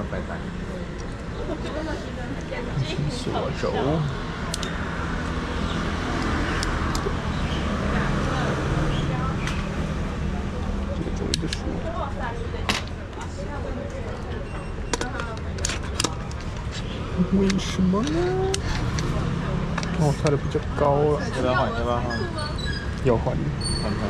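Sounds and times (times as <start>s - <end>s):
indistinct voices: 0.0s - 24.0s
street traffic rumble: 0.0s - 24.0s.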